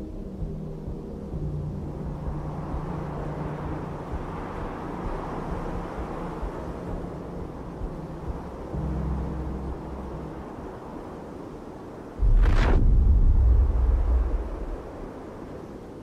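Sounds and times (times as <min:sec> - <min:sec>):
low rumbling drone: 0:12.2 - 0:15.3.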